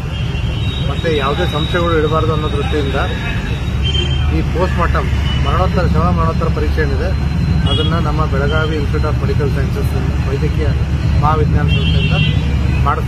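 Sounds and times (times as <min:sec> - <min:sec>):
man speaking into a microphone: 0:00.8 - 0:03.4, 0:04.2 - 0:13.0.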